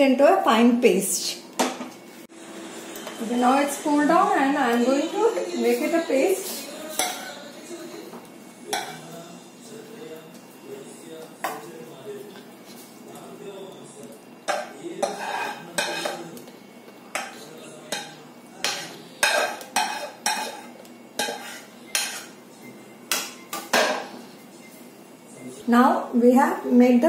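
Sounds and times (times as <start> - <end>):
spoon scraping metal pot: 14.5 - 16.3, 17.1 - 22.3.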